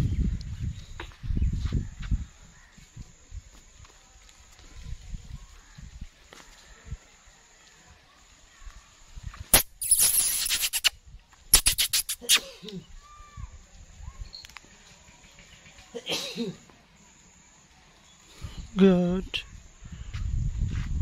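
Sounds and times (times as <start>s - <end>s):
sharp wing beats: 9.5s - 10.9s.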